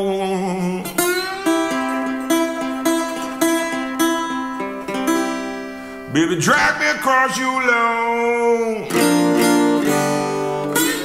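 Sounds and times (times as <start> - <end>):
acoustic guitar blues: 0.0 - 11.0.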